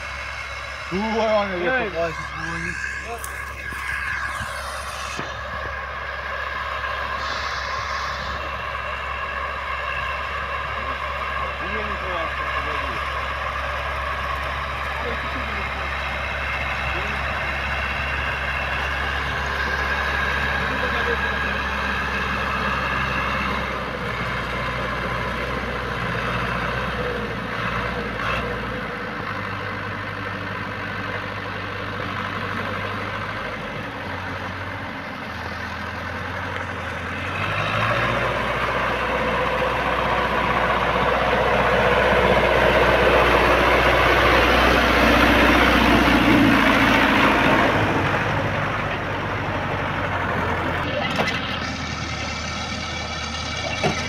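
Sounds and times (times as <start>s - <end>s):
tractor diesel engine under load: 0.0s - 54.0s.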